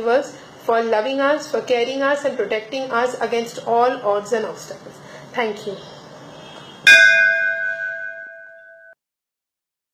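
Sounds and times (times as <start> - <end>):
struck bell chime: 6.9 - 9.0.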